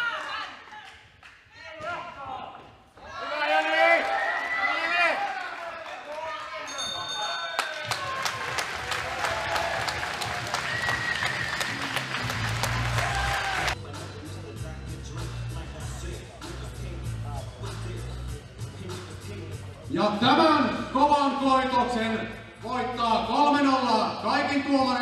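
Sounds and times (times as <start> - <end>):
voices shouting in a hall: 0.0 - 0.9
people clapping: 0.0 - 1.9, 3.3 - 13.8
ring bell: 6.6 - 8.0
music with deep beat: 11.6 - 20.0.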